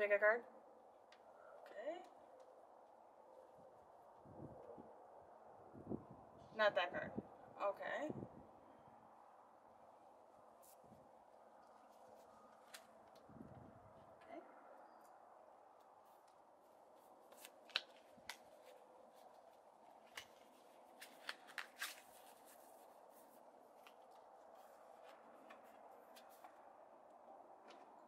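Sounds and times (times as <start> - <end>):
playing cards clicking: 17.3 - 18.8, 21.0 - 22.0.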